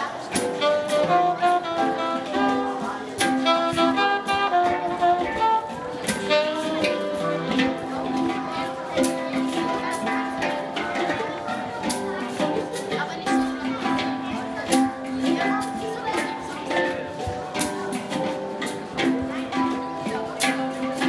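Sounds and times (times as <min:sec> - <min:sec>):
handpans played in rhythm: 0:00.0 - 0:21.0.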